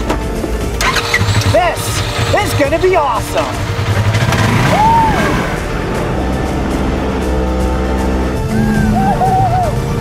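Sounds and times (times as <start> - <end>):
off-road vehicle engine running: 0.0 - 9.2
background music: 0.0 - 10.0.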